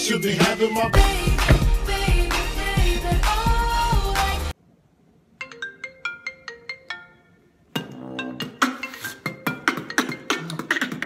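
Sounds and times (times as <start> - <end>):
smartphone ringtone melody: 5.5 - 7.5.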